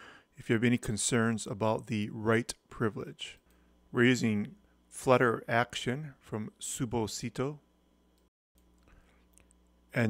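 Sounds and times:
man speaking: 0:00.4 - 0:07.7
faint small clicks: 0:08.1 - 0:09.8.

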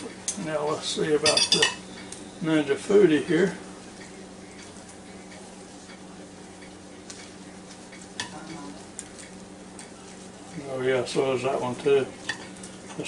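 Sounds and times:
faint hum and hiss: 0:00.0 - 0:13.0.

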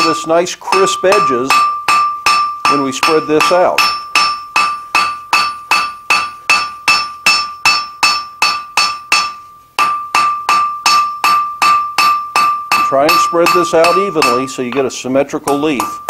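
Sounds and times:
anvil ringing: 0:00.0 - 0:16.0
hammer blows on hot steel: 0:00.0 - 0:16.0.

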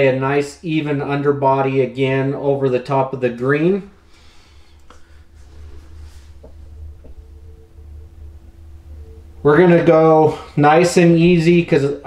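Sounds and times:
low steady hum: 0:00.0 - 0:12.0
faint steady tone: 0:03.6 - 0:12.0.

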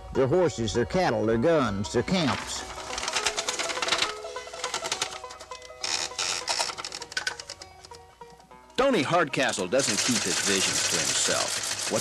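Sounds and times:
background music: 0:00.0 - 0:12.0
typewriter keys clicking: 0:02.8 - 0:07.6, 0:09.8 - 0:12.0.

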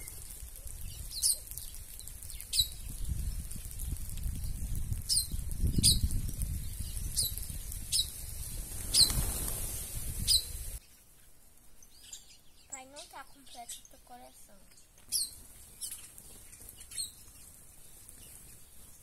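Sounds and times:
birds chirping: 0:00.0 - 0:04.0, 0:05.1 - 0:19.0
wings fluttering: 0:00.0 - 0:11.3, 0:15.0 - 0:19.0.

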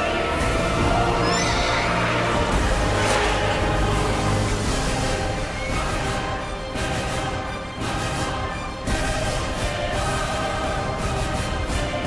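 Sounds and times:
dramatic orchestral music: 0:00.0 - 0:12.0.

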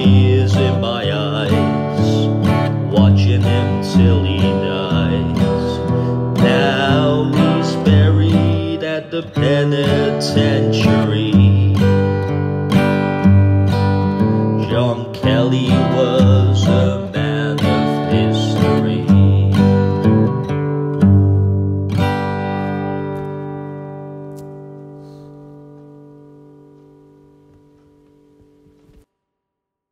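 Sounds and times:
acoustic guitar strumming: 0:00.0 - 0:29.1.

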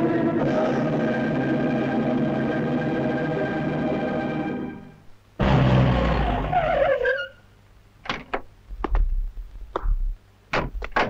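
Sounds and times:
car tyres squealing: 0:05.4 - 0:07.5.

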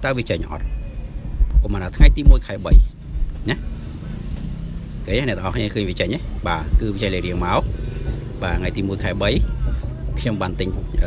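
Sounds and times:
low engine rumble: 0:00.0 - 0:11.0.

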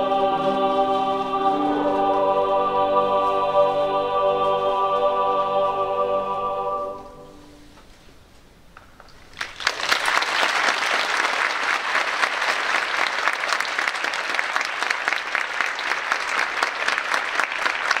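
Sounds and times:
large audience applauding: 0:09.3 - 0:18.0.

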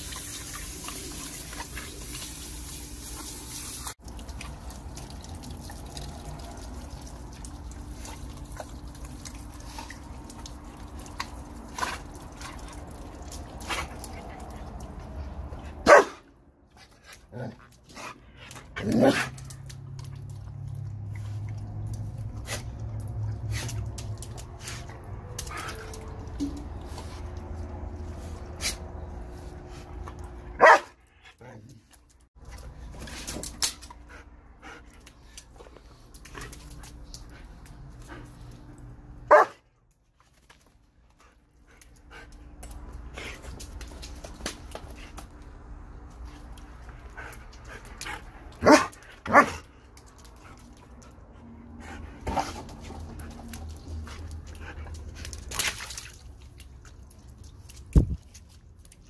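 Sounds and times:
dog barking: 0:15.8 - 0:16.2, 0:30.6 - 0:31.0, 0:39.3 - 0:39.6, 0:48.6 - 0:49.6.

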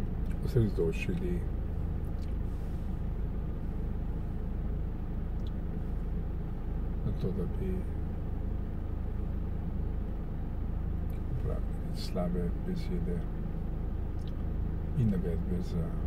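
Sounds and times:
car idling rumble: 0:00.0 - 0:16.0.

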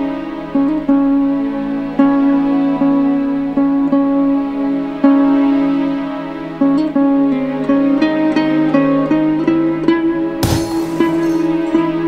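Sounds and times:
soft plucked string music: 0:00.0 - 0:12.0.

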